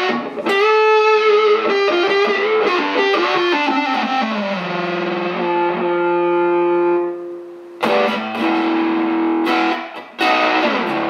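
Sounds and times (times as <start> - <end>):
fuzzy distorted electric guitar: 0.0 - 11.0.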